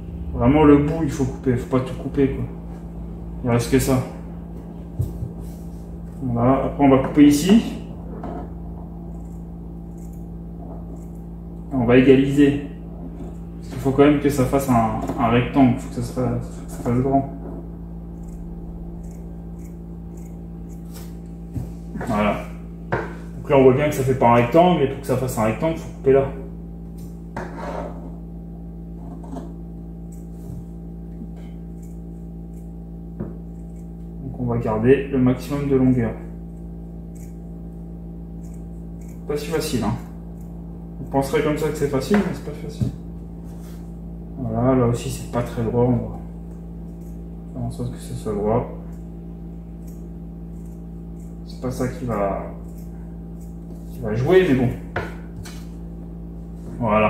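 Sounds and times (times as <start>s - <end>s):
steady low hum: 0.0s - 57.0s
scissors cutting cloth: 9.1s - 10.3s, 18.2s - 21.3s, 31.3s - 32.8s, 37.1s - 37.4s, 38.4s - 39.3s, 49.8s - 51.4s
scissors snipping fabric: 19.0s - 21.2s.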